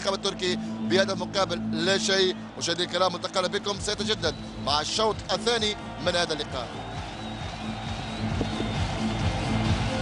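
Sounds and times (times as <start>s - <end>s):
music over television broadcast: 0.0s - 10.0s.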